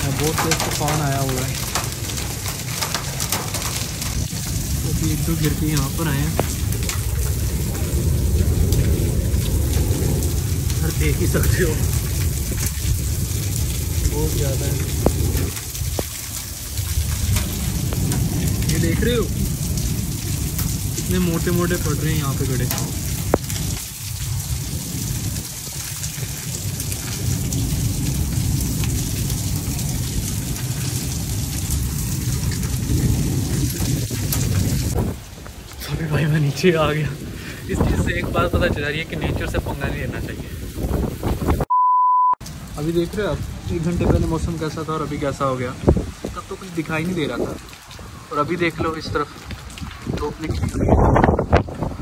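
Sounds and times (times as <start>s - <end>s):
hailstones ticking: 0.0s - 41.7s, 42.4s - 52.0s
rain falling on concrete: 0.0s - 41.7s, 42.4s - 52.0s
wind buffeting microphone: 0.0s - 41.7s, 42.6s - 52.0s.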